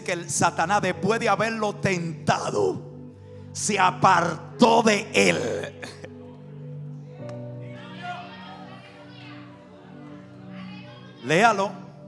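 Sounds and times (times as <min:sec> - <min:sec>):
faint congregation voices: 0:00.0 - 0:12.0
soft music of sustained chords: 0:00.0 - 0:12.0.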